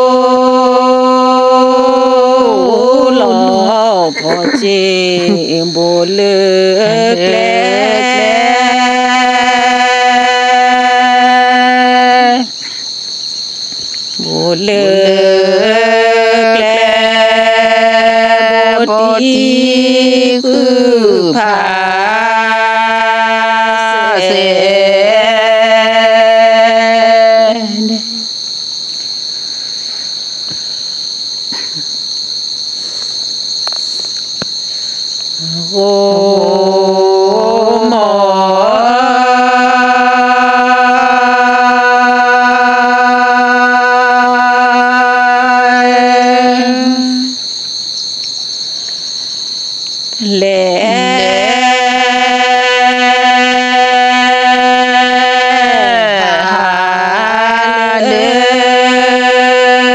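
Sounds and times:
solo voice chanting: 0.0s - 12.8s, 14.1s - 28.3s, 35.4s - 47.4s, 50.2s - 59.9s
steady high-pitched whine: 0.0s - 39.2s
high-pitched insect trill: 0.0s - 59.9s.

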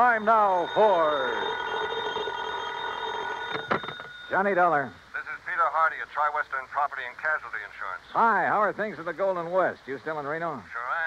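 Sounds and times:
telephone bell ringing: 0.0s - 4.4s.

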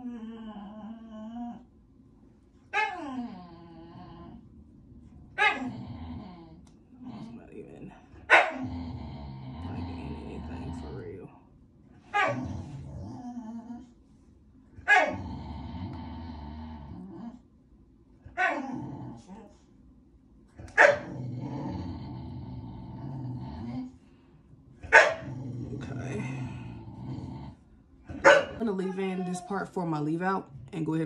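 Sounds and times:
dog growling low: 0.0s - 1.7s, 2.8s - 11.4s, 12.0s - 14.0s, 14.8s - 17.5s, 18.2s - 19.7s, 20.5s - 30.8s
dog barking: 5.4s - 5.6s, 8.3s - 8.6s, 12.1s - 12.4s, 14.8s - 15.2s, 20.8s - 21.1s, 24.9s - 25.3s, 28.2s - 28.6s.

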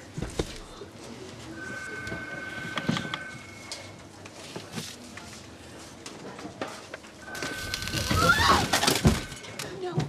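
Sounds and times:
crash and clatter of objects: 7.3s - 9.6s.

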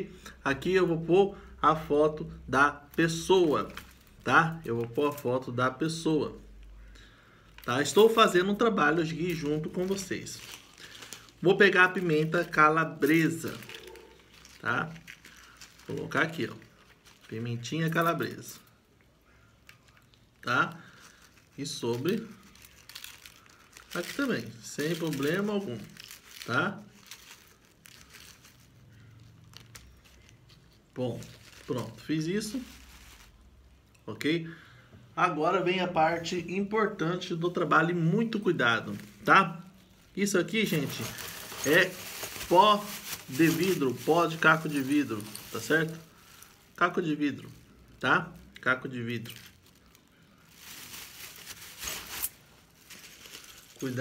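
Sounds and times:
foil packet crinkling: 2.2s - 18.9s, 19.6s - 33.6s, 37.2s - 54.0s.

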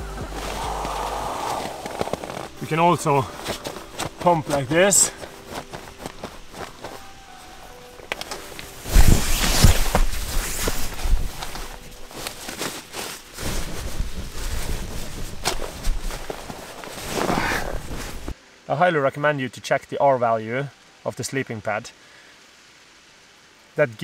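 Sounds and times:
air sleeping pad rustling: 0.0s - 18.4s.

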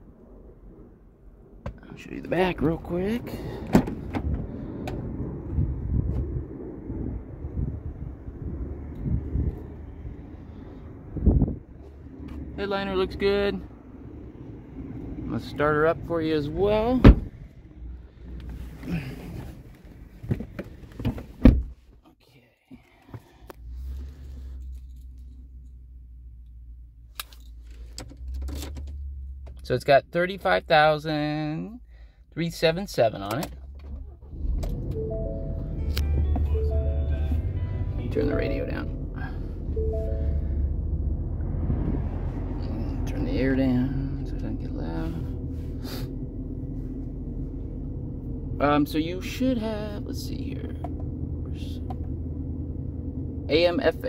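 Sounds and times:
car engine starting and idling: 0.0s - 21.9s, 22.7s - 54.0s
climate fan blowing: 1.9s - 19.8s
person breathing: 3.2s - 5.1s, 31.8s - 32.3s
car door thunk: 3.6s - 4.4s, 17.0s - 17.4s, 20.2s - 21.7s.

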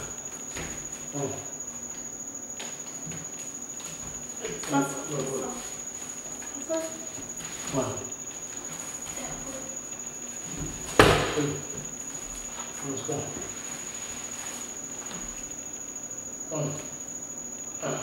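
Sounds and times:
bare feet thudding on wood floor: 0.4s - 1.1s.

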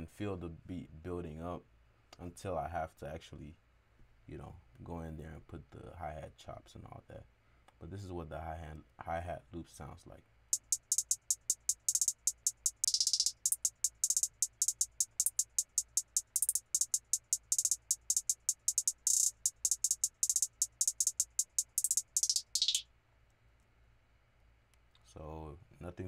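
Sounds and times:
hi-hat loop: 10.6s - 22.8s.

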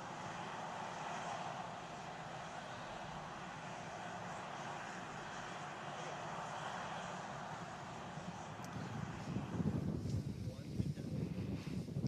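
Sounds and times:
outdoor ambient hiss and rumble: 0.0s - 11.8s.

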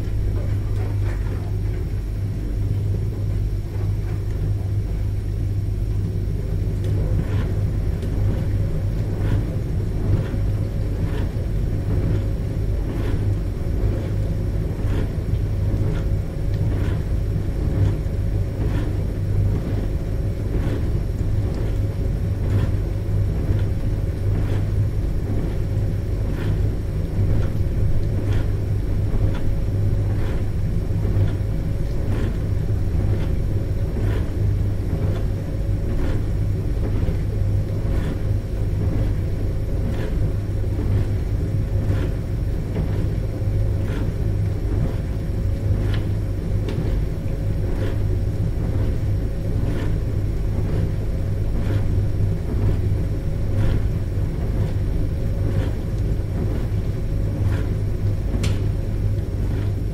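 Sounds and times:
dishwasher running: 0.0s - 59.9s.

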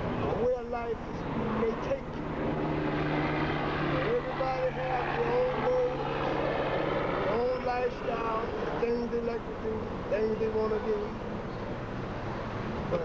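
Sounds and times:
steady engine drone: 0.0s - 13.0s.

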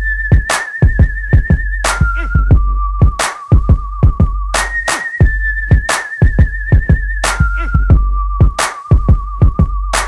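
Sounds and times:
whistled melody: 0.0s - 10.0s
deep bass line: 1.0s - 10.0s
booming kick drums: 2.4s - 4.5s, 7.8s - 9.9s
sharp claps: 3.2s - 3.5s, 8.6s - 9.0s.

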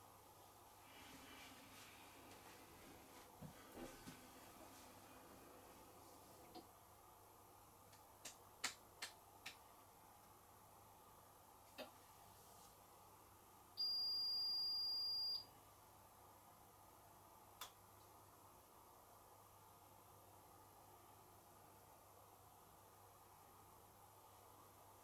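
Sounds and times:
washing machine beep: 13.8s - 15.5s.

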